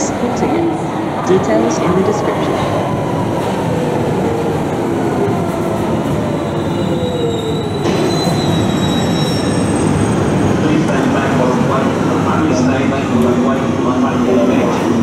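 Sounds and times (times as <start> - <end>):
high-pitched wheel squeals: 6.5 - 10.2.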